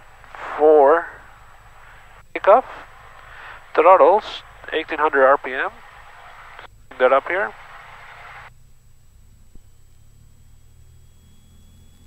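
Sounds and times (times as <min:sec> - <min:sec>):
faint aircraft engine hum: 0:00.0 - 0:12.0
intercom hiss: 0:00.2 - 0:08.5.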